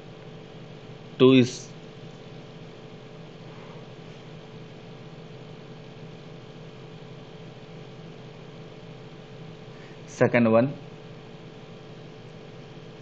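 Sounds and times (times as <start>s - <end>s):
constant low hum: 0.0s - 13.0s
steady background hiss: 0.0s - 13.0s.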